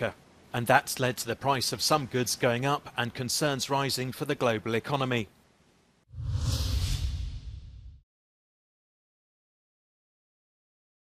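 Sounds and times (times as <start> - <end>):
whoosh sound effect: 6.1 - 8.0.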